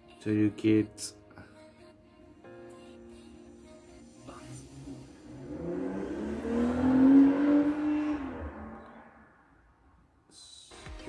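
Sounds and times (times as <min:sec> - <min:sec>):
vehicle engine passing by: 0:04.1 - 0:09.8.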